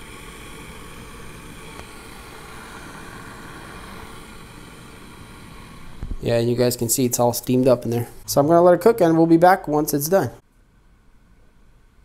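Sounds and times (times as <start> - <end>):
egg cooker water boiling: 0.0 - 6.3.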